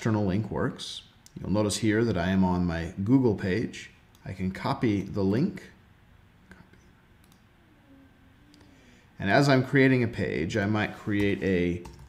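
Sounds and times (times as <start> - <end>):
faint computer mouse clicks: 8.5 - 8.7.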